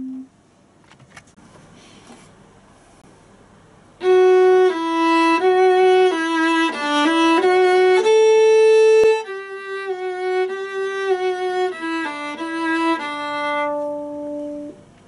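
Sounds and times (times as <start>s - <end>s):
viola melody: 4.0s - 14.9s.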